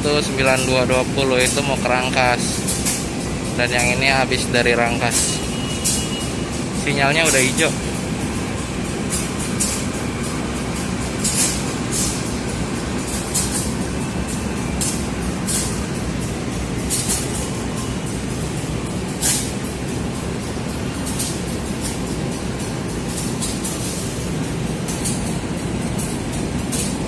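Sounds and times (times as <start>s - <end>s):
locomotive engine rumble: 0.0s - 27.0s.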